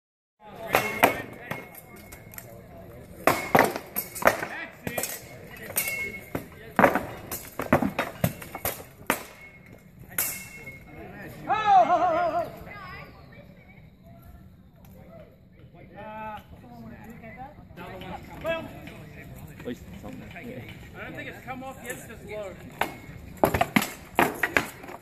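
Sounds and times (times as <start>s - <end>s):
swords striking shields and armour: 0.6s - 1.8s, 3.2s - 9.6s.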